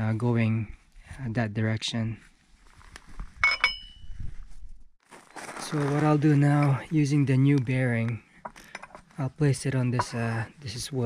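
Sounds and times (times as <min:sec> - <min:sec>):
light metallic clinks: 0:03.4 - 0:04.1.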